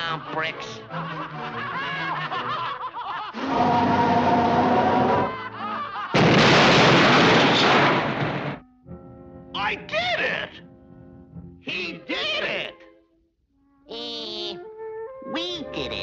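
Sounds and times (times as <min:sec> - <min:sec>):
orchestral music: 0:00.0 - 0:02.6, 0:03.4 - 0:05.5
cartoon snickering laughter: 0:00.7 - 0:03.7
loud rushing blast: 0:06.2 - 0:08.6.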